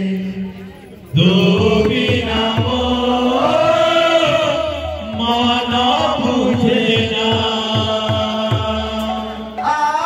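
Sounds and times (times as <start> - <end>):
group chanting in unison: 1.2 - 10.0.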